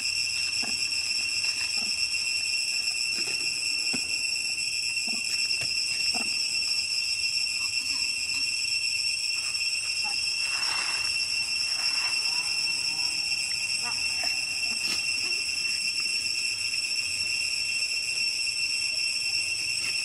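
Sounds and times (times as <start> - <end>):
cicada chorus buzzing: 0.0 - 20.0
small squeaks: 0.4 - 8.6, 9.2 - 17.4.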